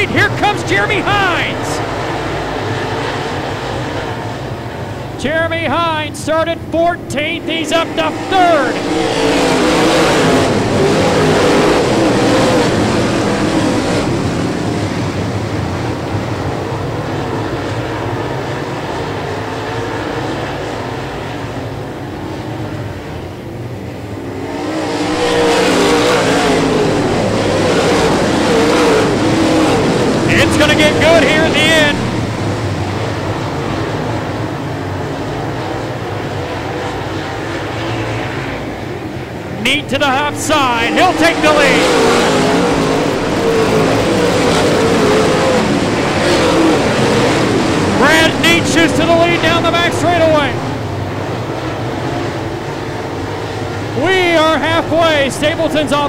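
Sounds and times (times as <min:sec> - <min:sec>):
race car engines running hard: 0:00.0 - 0:56.0.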